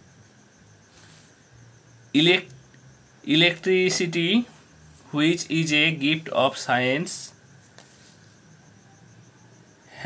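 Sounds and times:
faint high-pitched trill: 8.1s - 10.0s.

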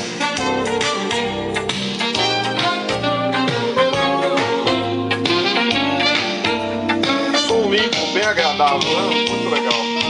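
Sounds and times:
instrumental music from loudspeakers: 0.0s - 10.0s.

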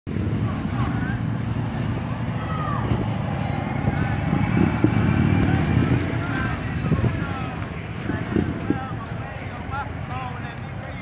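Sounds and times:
distant crowd shouting: 0.1s - 11.0s
low outdoor rumble: 0.1s - 11.0s.

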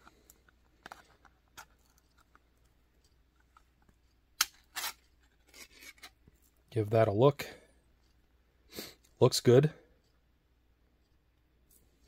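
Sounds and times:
tin lid scraping tear: 4.4s - 6.2s.

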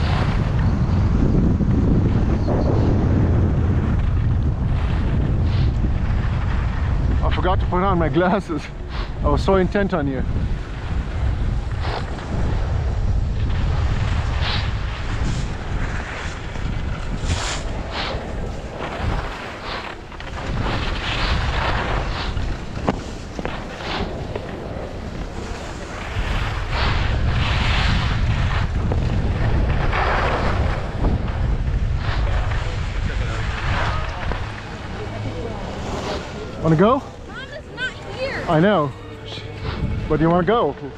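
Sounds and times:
skis scraping on snow: 0.0s - 40.9s
wind buffeting microphone: 0.0s - 40.9s.

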